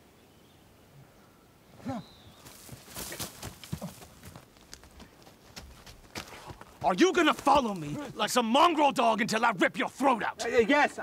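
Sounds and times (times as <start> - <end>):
footsteps crunching on dry leaves: 2.4 - 8.2.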